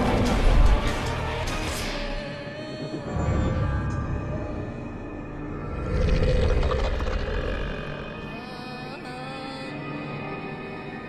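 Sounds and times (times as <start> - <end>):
deep monster growl: 5.4 - 8.4.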